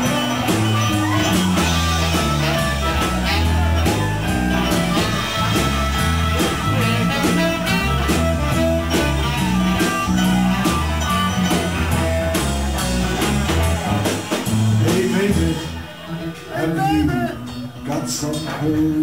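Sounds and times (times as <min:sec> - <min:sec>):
saxophone: 0:00.0 - 0:13.9
bass and drum kit: 0:00.0 - 0:19.0
electric guitar: 0:00.0 - 0:19.0.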